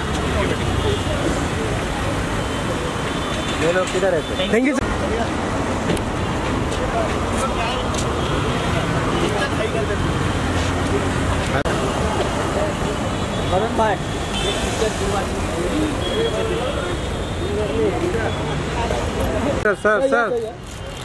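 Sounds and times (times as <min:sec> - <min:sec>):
street traffic noise: 0:00.0 - 0:21.0.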